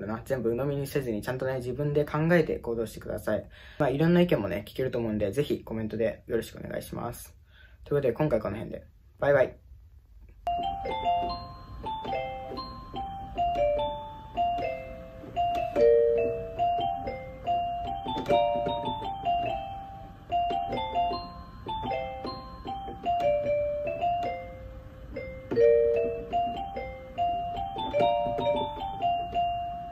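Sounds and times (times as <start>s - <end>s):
electronic keyboard bell-like melody: 10.4s - 29.9s.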